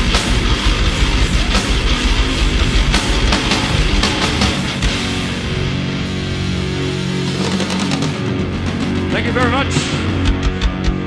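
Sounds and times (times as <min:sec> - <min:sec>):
distorted electric guitars and bass: 0:00.0 - 0:11.0
drum and cymbal hits: 0:00.0 - 0:11.0.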